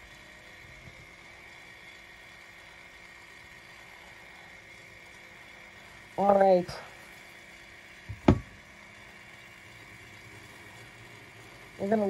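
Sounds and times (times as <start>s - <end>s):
sharp knock: 8.2s - 8.5s.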